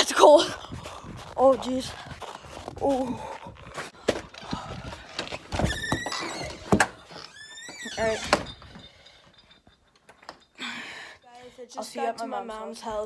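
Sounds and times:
door squeaking: 5.4 - 9.1
door knocks and thuds: 5.5 - 7.1.

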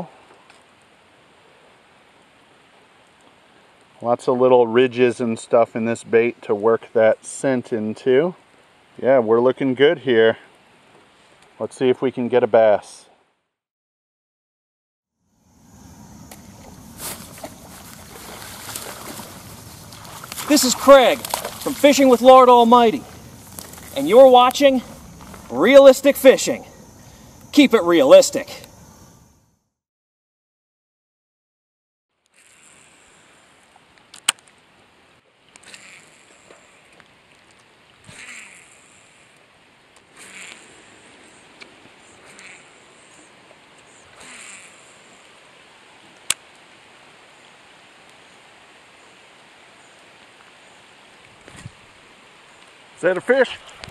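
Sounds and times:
rain falling on a pond: 0.0 - 5.6, 7.1 - 11.6, 16.5 - 26.0, 33.4 - 53.9
low outdoor rumble: 15.5 - 27.6.

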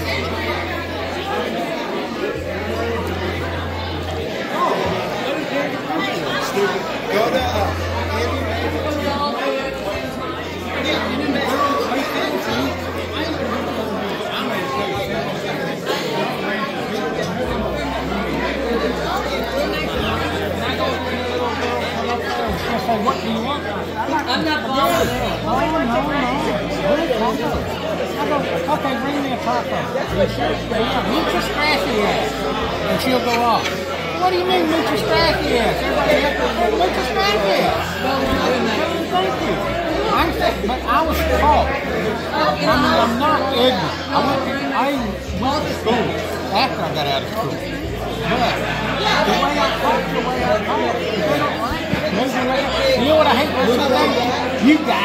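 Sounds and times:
babble of overlapping conversation: 0.0 - 55.0
people talking over one another: 0.0 - 55.0.

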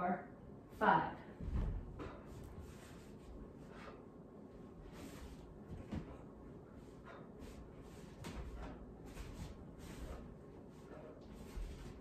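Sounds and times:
foot tapping on floor: 4.9 - 6.4, 7.4 - 12.0.

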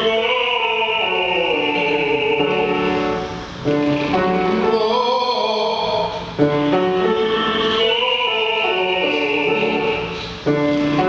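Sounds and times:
tenor voice singing: 0.0 - 10.2
piano: 0.0 - 11.0.

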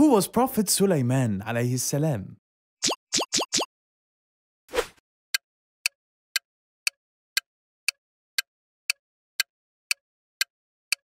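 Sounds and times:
pop sound effects: 2.8 - 3.7.

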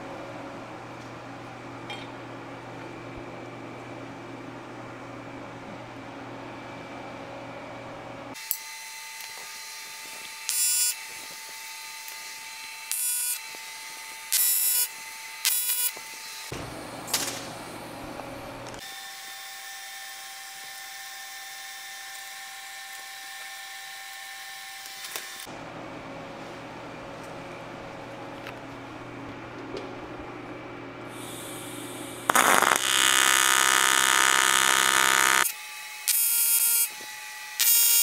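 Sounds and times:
faint welding machine hum: 0.0 - 38.0
welding arc buzzing: 8.4 - 18.9, 31.1 - 38.0.

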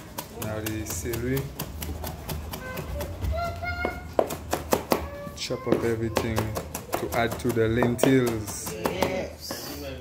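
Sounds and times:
knife chopping on wooden board: 4.1 - 5.1, 5.7 - 9.6.

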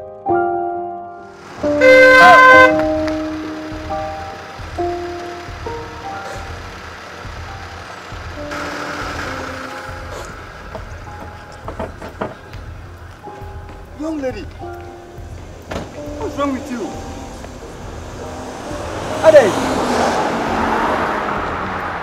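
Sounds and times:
soft piano music: 0.0 - 22.0
car horn: 1.6 - 6.7.

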